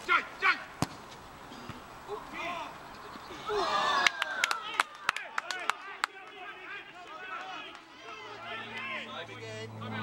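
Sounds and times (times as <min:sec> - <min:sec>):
players shouting: 0:02.1 - 0:10.0.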